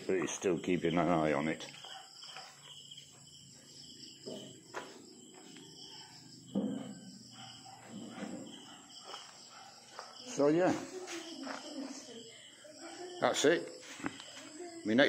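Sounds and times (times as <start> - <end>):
insects chirring: 0.0 - 15.0.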